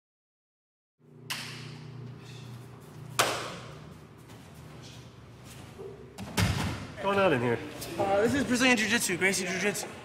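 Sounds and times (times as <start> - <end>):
steady low hum: 1.0 - 10.0.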